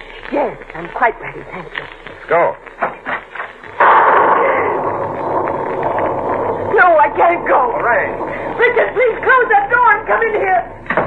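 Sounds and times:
storm wind and rain: 3.8 - 10.6
voices: 3.8 - 10.8.

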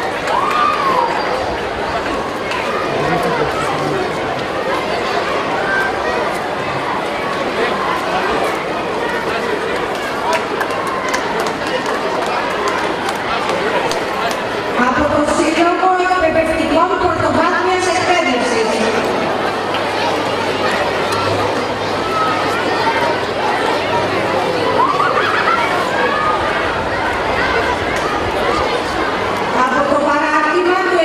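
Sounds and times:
outdoor crowd noise: 0.0 - 31.0.

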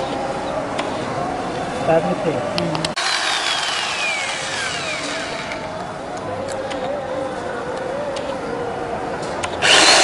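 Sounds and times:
electric drill spinning down: 3.0 - 5.6, 9.6 - 10.0.

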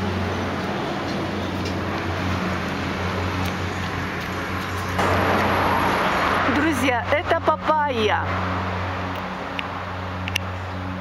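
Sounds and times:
road traffic hum: 0.0 - 11.0
woman's voice: 6.4 - 8.3.

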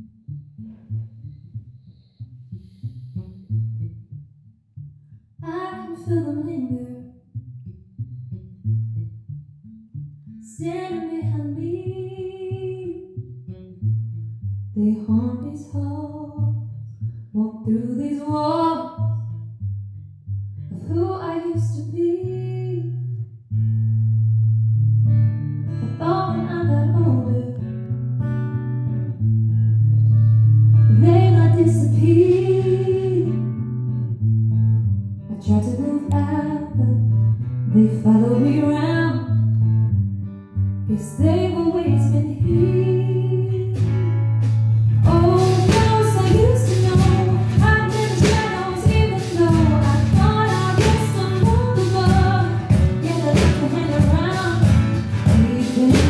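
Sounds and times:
woman singing: 5.4 - 7.2, 10.4 - 13.2, 14.8 - 16.6, 17.4 - 19.2, 20.7 - 23.0, 25.8 - 27.7, 30.9 - 33.5, 35.3 - 37.1, 37.7 - 39.4, 40.9 - 44.1, 45.0 - 56.0
strummed acoustic guitar: 41.9 - 56.0
drum kit: 43.8 - 56.0.

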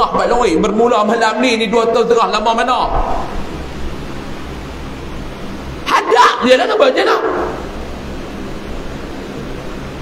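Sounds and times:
sound system hiss: 0.0 - 10.0
low rumble: 2.4 - 4.2.

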